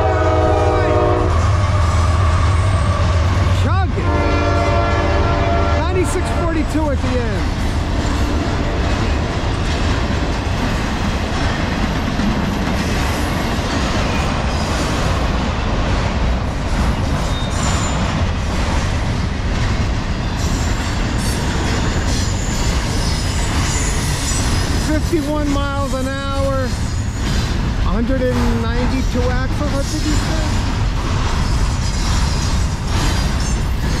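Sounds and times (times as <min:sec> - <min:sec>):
freight train wheels rumbling on rail: 0:00.0 - 0:34.0
clickety-clack of rail joints: 0:03.4 - 0:34.0.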